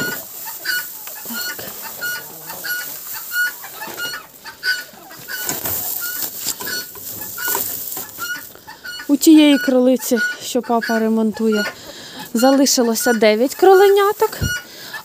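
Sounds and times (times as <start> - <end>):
fowl calling high notes: 0.0 - 14.9
dry hay rustling: 0.0 - 15.0.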